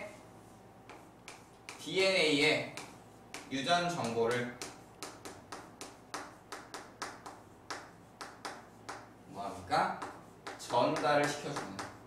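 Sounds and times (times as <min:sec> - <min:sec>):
chalk tapping on chalkboard: 0:00.8 - 0:12.0.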